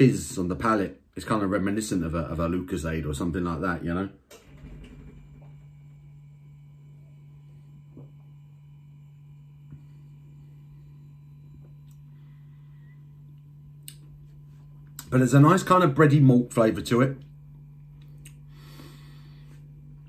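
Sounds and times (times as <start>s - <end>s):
low hum: 4.4s - 20.0s.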